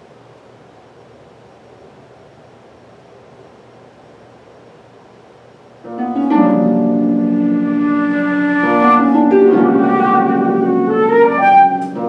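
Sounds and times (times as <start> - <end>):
harp accompaniment: 5.9 - 12.0
flute playing held notes: 6.0 - 12.0.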